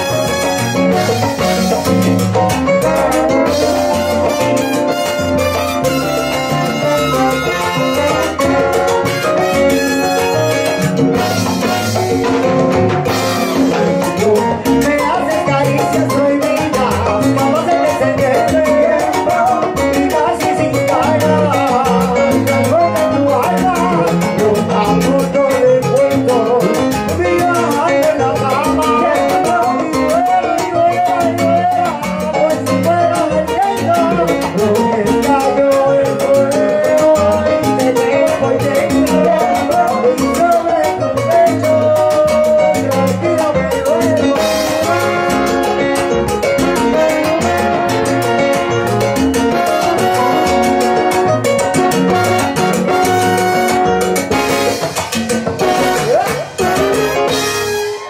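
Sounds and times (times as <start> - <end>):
horn section: 0.0 - 14.1, 44.4 - 54.9, 55.6 - 58.0
congas: 0.0 - 58.0
lead singer: 13.9 - 48.6.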